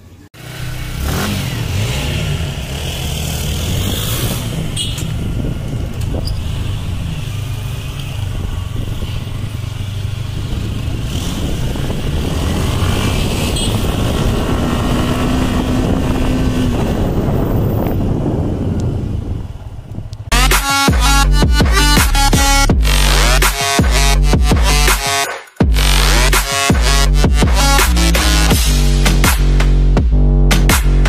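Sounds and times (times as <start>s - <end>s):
motorcycle engine running: 0.0s - 24.9s
wind noise on microphone: 3.5s - 20.6s.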